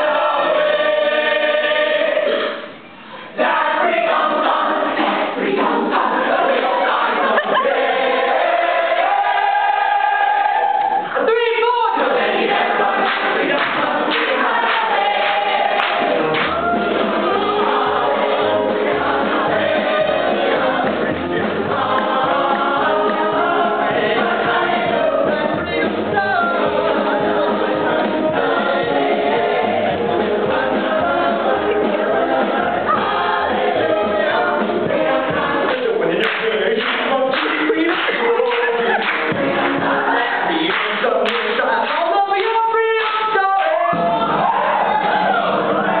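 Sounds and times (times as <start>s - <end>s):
group singing gospel-style: 0.0s - 11.2s, 11.8s - 46.0s.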